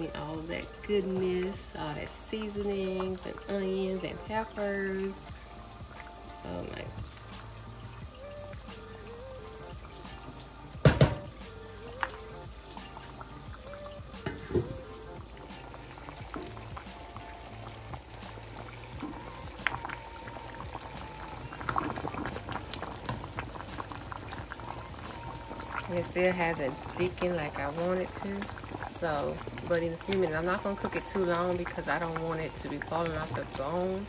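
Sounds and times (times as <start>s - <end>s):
gravy bubbling in a skillet: 0.0s - 34.0s.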